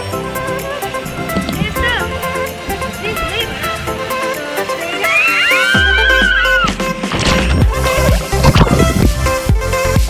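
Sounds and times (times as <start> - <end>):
upbeat electronic music: 0.0 - 10.0
people screaming on water slide: 4.7 - 6.8.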